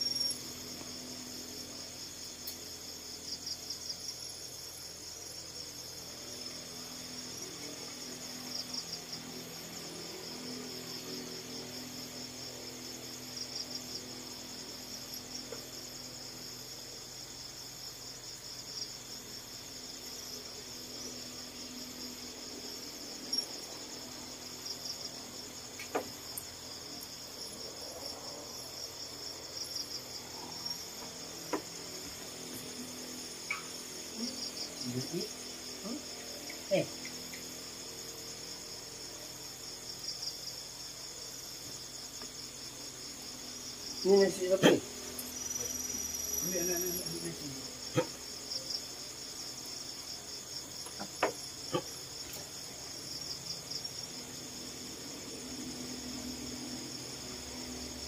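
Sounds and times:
crickets chirping: 0.0 - 58.0.

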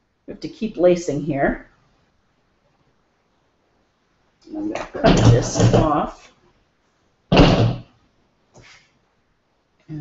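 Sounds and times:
loud knock: 4.9 - 6.0, 7.3 - 7.9.

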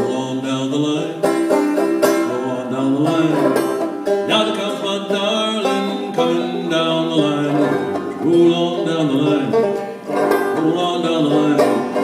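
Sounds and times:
banjo picked and strummed: 0.0 - 12.0
man singing: 0.0 - 12.0.

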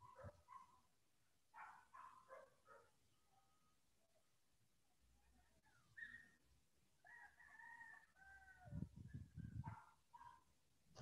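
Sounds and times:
rooster crowing: 7.0 - 8.9.

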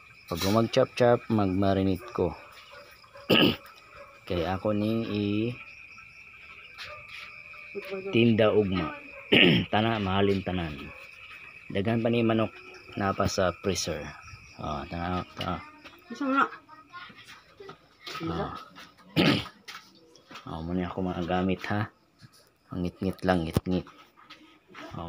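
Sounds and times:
crickets trilling: 0.0 - 25.0
man coughing: 3.3 - 3.7, 9.3 - 9.7, 19.2 - 19.6.

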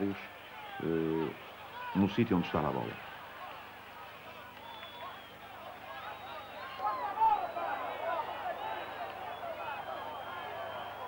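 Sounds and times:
stadium crowd shouting: 0.0 - 11.0.

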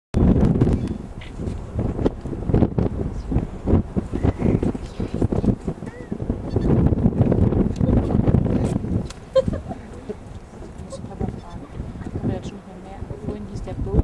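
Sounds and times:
wind buffeting microphone: 0.2 - 14.0
indistinct voices: 7.7 - 14.0.

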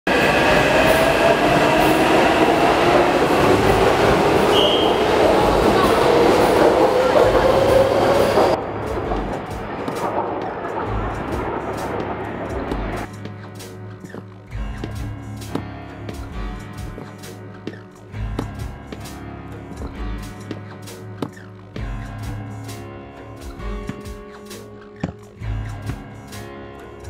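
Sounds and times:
train running with rising whine: 0.1 - 13.1.

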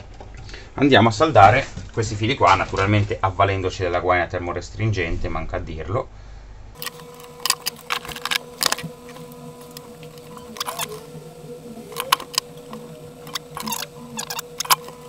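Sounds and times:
faint steady hum: 6.0 - 15.0
scissors snipping wires: 6.8 - 15.0
clicks of tools being handled: 11.9 - 15.0.

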